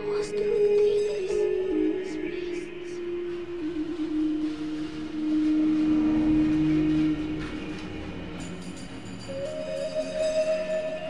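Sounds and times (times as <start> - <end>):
rail trolley wheel rumble: 3.0 - 11.0.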